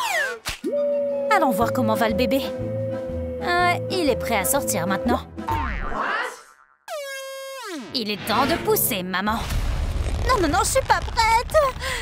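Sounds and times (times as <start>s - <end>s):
held tone: 0.7s - 5.3s
background music: 0.7s - 5.7s
cartoon boing: 5.5s - 7.7s.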